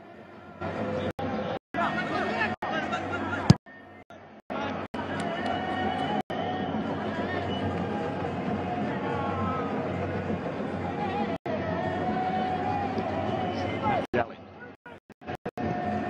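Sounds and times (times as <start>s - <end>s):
stadium crowd din: 0.0s - 16.0s
crowd chanting: 4.5s - 14.1s, 14.9s - 16.0s.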